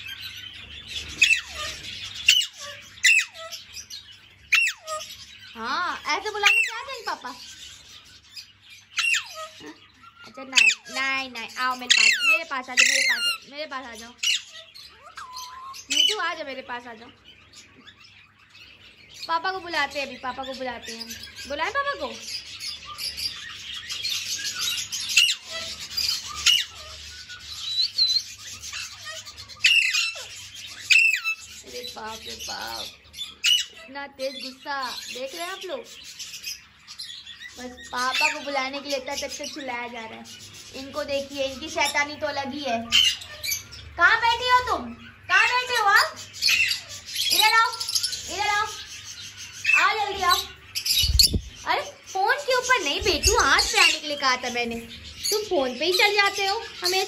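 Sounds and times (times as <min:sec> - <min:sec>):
parakeet raspy chatter: 0:00.0 - 0:57.0
parakeet screeching: 0:00.0 - 0:57.0.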